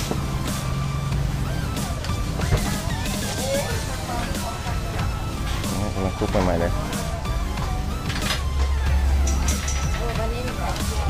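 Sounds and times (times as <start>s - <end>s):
low traffic engine hum: 0.0s - 11.0s
light clinks: 9.2s - 10.2s.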